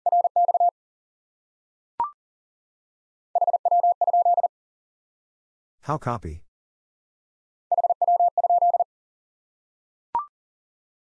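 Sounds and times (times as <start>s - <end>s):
morse code beeps: 0.0s - 0.7s, 3.4s - 4.5s, 7.7s - 8.9s.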